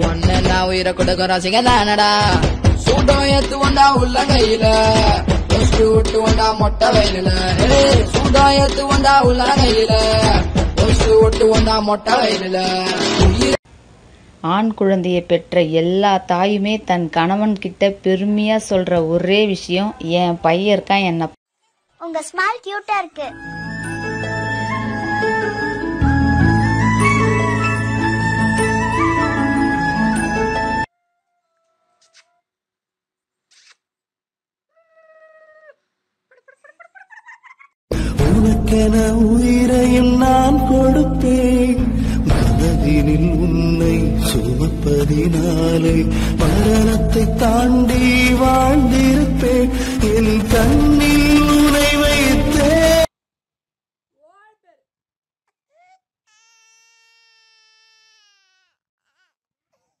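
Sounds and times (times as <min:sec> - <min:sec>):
small child vocalizing: 0:34.7 - 0:35.8, 0:55.7 - 1:00.0.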